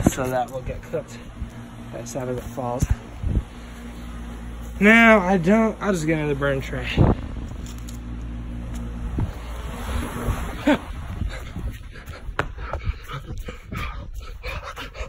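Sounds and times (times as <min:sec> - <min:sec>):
footsteps on gravel and grass: 0:00.0 - 0:05.5, 0:06.9 - 0:09.8
steady low hum: 0:00.0 - 0:15.0.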